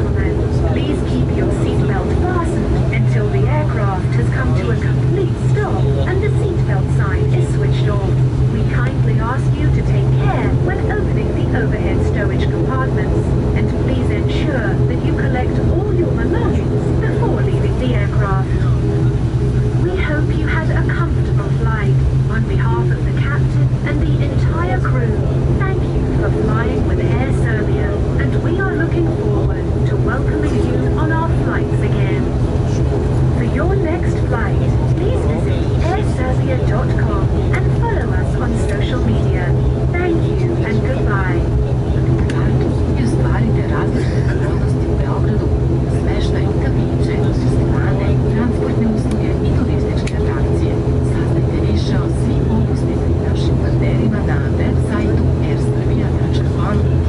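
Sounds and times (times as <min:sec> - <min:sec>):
people talking: 0:00.0 - 0:57.0
propeller engine drone in cabin: 0:00.0 - 0:57.0.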